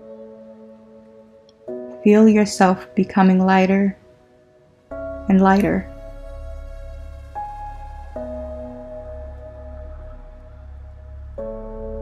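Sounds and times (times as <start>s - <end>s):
bell-like chords: 4.9s - 11.7s
low steady drone: 4.9s - 12.0s.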